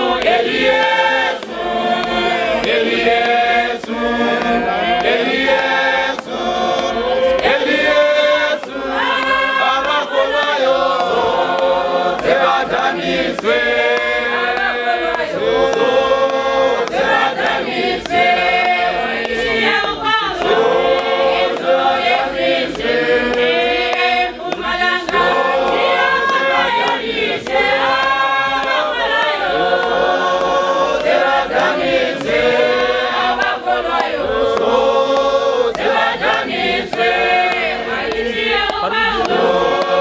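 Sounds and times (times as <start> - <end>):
women's choir singing a hymn: 0.0 - 40.0.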